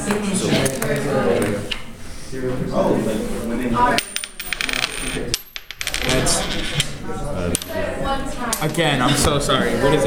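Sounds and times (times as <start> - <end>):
coin clattering on a desk: 4.0 - 6.9.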